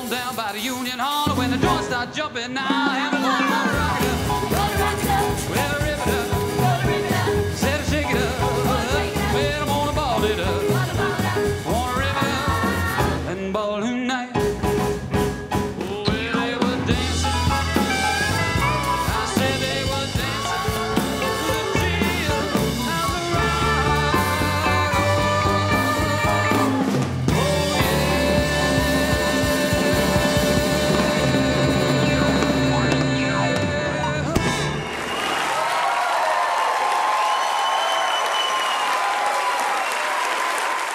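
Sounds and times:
drum kit beat: 0:00.0 - 0:13.4, 0:14.4 - 0:35.1
man singing: 0:00.0 - 0:15.0, 0:15.6 - 0:34.8
live rock and roll band: 0:00.0 - 0:36.1
audience applauding and cheering: 0:34.5 - 0:40.9.

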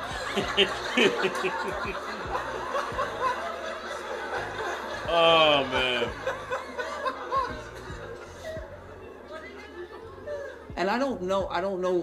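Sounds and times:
man chuckling: 0:00.3 - 0:02.0, 0:05.0 - 0:06.4.

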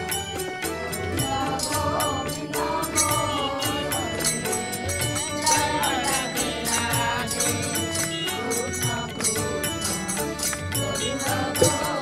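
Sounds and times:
person chanting: 0:01.2 - 0:12.0.

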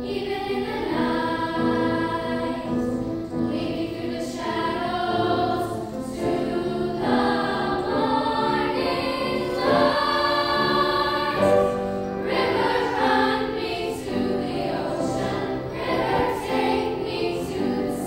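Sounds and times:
girls choir singing: 0:00.0 - 0:18.0.

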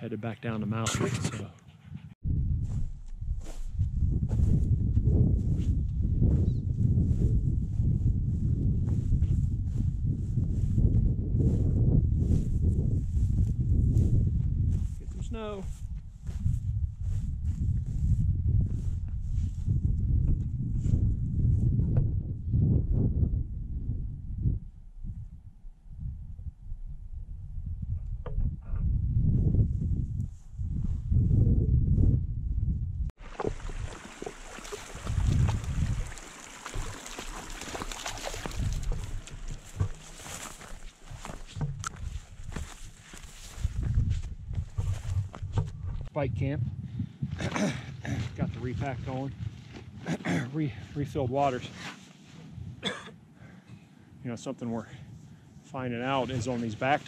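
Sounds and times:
wind buffeting microphone: 0:00.9 - 0:51.7, 0:52.4 - 0:53.0
footsteps crunching on rocky ground: 0:02.7 - 0:05.8, 0:33.2 - 0:46.1, 0:48.3 - 0:50.2.

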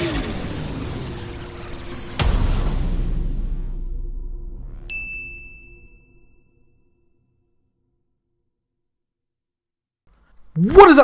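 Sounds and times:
bright ding: 0:04.9 - 0:06.7.

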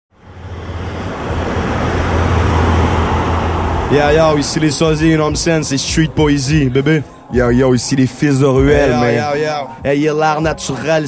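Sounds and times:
low hum: 0:00.1 - 0:07.4
loud steady rushing noise: 0:00.2 - 0:11.0
man speaking: 0:03.9 - 0:11.0.

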